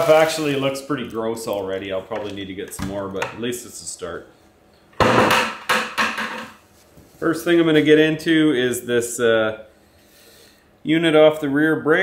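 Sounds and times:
knocks on concrete floor: 5.0 - 6.6.

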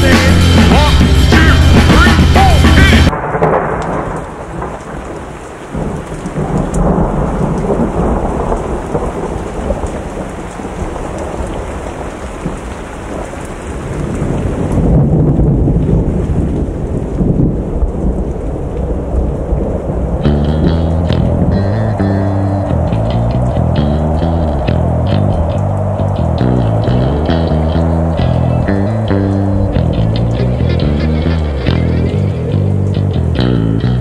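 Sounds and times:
low rumbling noise: 0.0 - 4.8, 14.6 - 34.0
dense crackle: 3.1 - 33.5.

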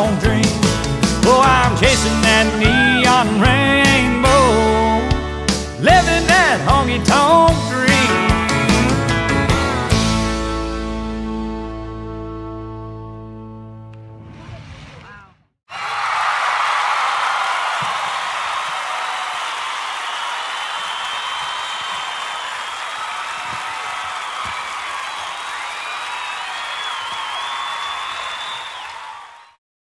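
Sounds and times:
crowd applauding and cheering: 15.7 - 29.6
whistles: 19.9 - 29.6.

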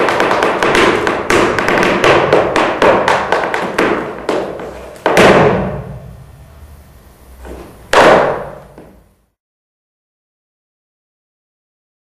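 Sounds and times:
sharp dance stamp: 0.0 - 6.2, 7.4 - 9.0.

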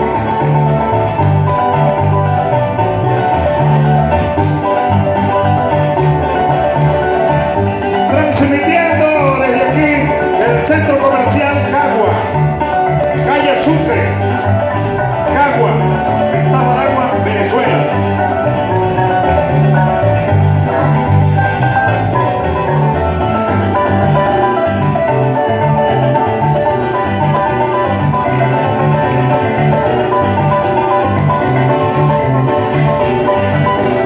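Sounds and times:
deep bass notes: 0.0 - 34.0
harp and cuatro instrumental music: 0.0 - 34.0
maraca rhythm: 0.0 - 34.0.

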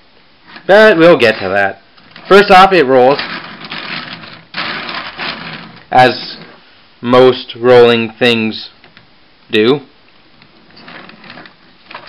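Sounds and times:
toy wheels rolling on wood: 0.5 - 6.6, 10.6 - 12.0.

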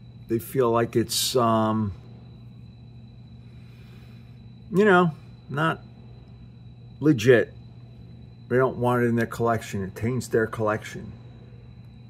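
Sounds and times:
low hum: 0.0 - 12.0
thin high whine: 0.0 - 12.0.

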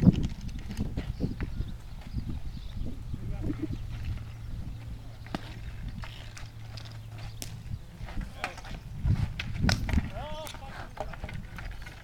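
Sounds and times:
hockey sticks clacking on asphalt: 0.0 - 2.2, 3.9 - 12.0.

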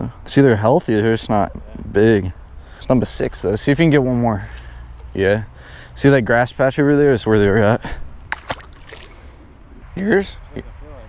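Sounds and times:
fish splashing in water: 8.3 - 9.4.

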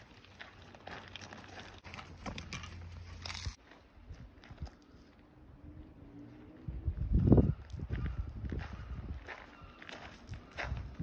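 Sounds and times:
footsteps on gravel: 0.0 - 5.1, 7.2 - 11.0.

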